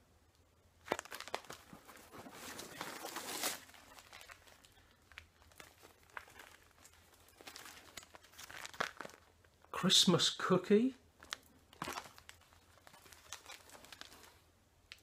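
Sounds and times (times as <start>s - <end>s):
plastic bags crinkling: 0.8s - 9.8s, 11.1s - 15.0s.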